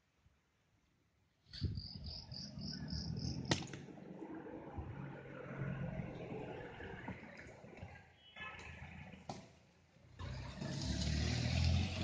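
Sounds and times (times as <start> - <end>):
cricket chirping: 1.6 - 3.5.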